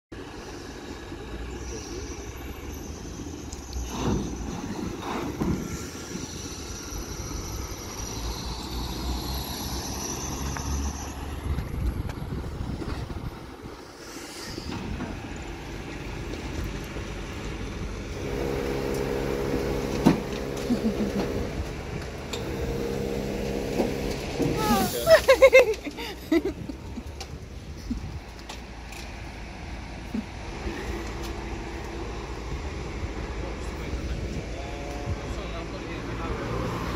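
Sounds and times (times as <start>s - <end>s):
van driving past: 0.2s - 13.5s, 14.6s - 27.2s
low engine rumble: 0.2s - 36.7s
pitched engine hum: 0.2s - 36.9s.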